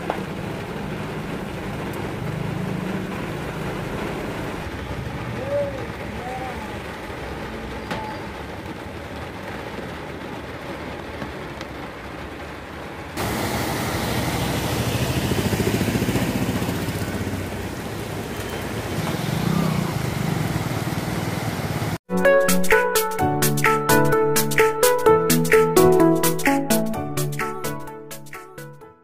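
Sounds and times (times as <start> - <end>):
rain and water hiss: 0.0 - 22.0
motorcycle engine rumbling: 13.3 - 21.9.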